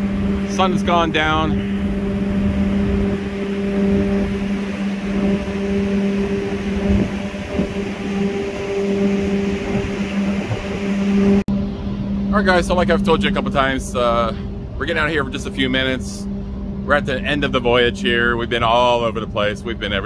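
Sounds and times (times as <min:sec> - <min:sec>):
ship machinery hum: 0:00.0 - 0:20.0.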